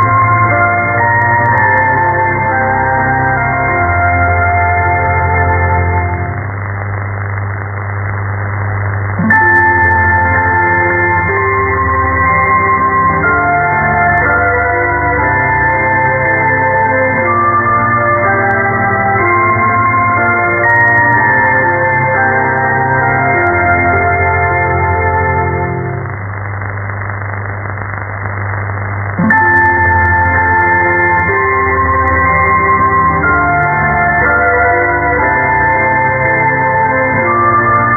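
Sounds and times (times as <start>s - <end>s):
constant low hum: 0.0s - 37.8s
radio static hiss: 0.0s - 37.9s.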